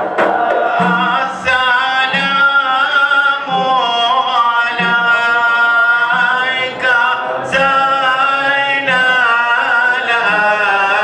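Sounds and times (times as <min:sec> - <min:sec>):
men singing unaccompanied: 0:00.3 - 0:11.0.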